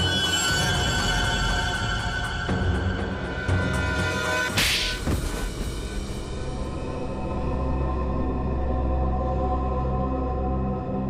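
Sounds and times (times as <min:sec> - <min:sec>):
tense background music: 0:00.0 - 0:11.0.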